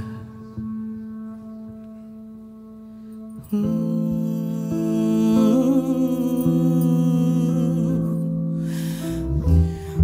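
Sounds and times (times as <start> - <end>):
double bass: 3.5 - 10.0
person singing wavering vocal: 3.5 - 10.0.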